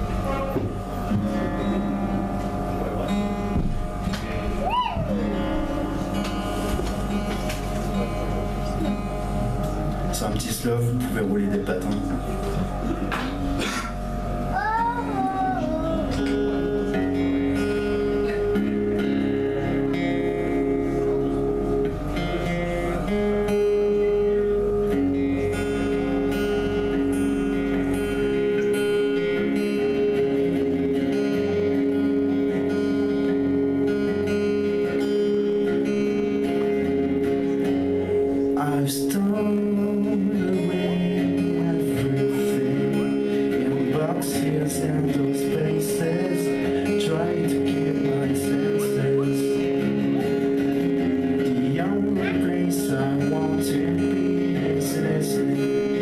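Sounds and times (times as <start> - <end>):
acoustic guitar: 0.0 - 56.0.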